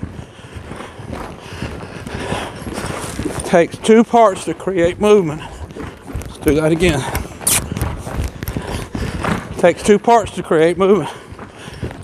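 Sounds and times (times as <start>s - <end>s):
hoofbeats on sand: 0.0s - 12.0s
saddle and rider movement: 0.0s - 12.0s.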